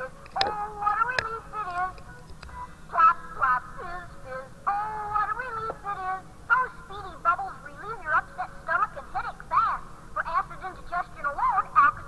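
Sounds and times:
person singing a jingle: 0.0s - 2.0s, 2.6s - 12.0s
background music: 0.0s - 12.0s.

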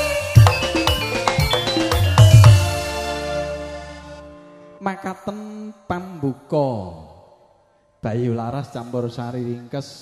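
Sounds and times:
man chant-like announcing: 4.8s - 7.3s.

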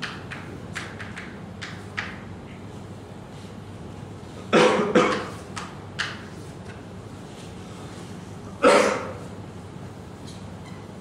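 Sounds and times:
faint steady hum: 0.0s - 11.0s
person coughing: 4.5s - 5.4s, 8.6s - 9.2s.

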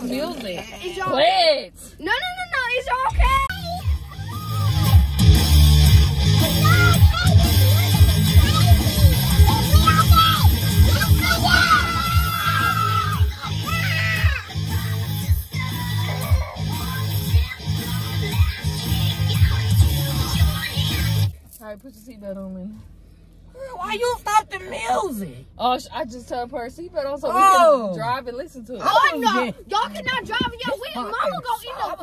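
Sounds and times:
loud rock music with vocals: 4.0s - 21.3s.

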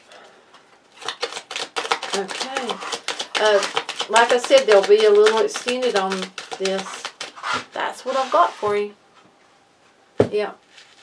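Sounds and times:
cards being shuffled: 0.9s - 8.4s.

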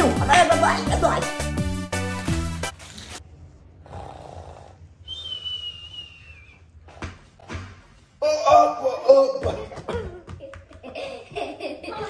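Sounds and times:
soft snore: 3.8s - 4.8s
high whistle on out-breath: 5.0s - 6.7s.

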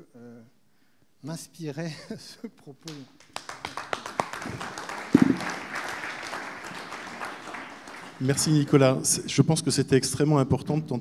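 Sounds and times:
audience applauding: 2.9s - 9.2s.

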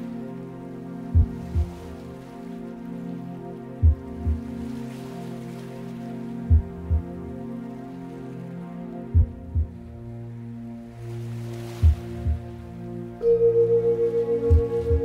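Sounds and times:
heartbeat-like double thump: 1.2s - 1.7s, 3.8s - 4.4s, 9.2s - 9.8s, 14.5s - 15.0s
singing bowl tones: 13.2s - 15.0s.

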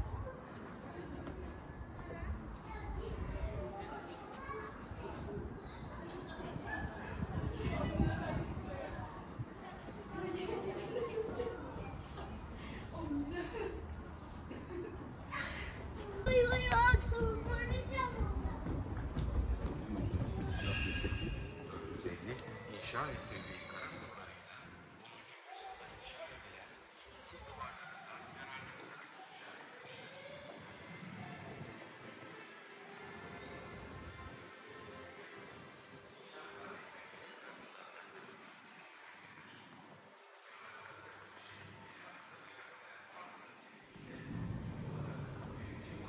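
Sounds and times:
steady low rumble: 44.0s - 46.0s.

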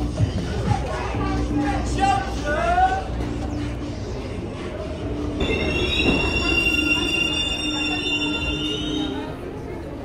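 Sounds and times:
low train rumble: 0.0s - 10.0s
train wheels squealing on rails: 5.3s - 9.8s.

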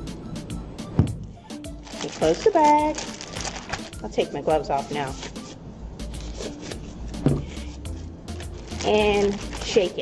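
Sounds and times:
thin plastic crinkling: 1.8s - 4.1s, 7.6s - 10.0s.

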